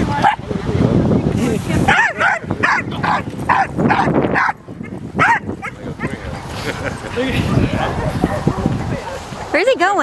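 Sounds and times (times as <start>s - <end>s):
dog yipping and barking: 1.9s - 4.6s, 5.2s - 6.2s.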